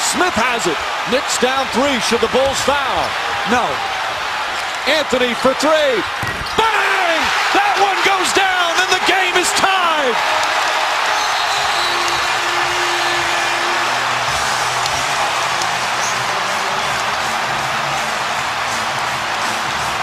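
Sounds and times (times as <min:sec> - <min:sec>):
crowd cheering and applauding: 0:00.0 - 0:20.0.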